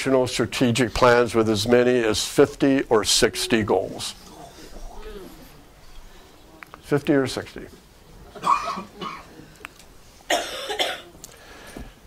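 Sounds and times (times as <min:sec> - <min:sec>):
man coughing: 0:08.4 - 0:09.4, 0:10.3 - 0:11.2.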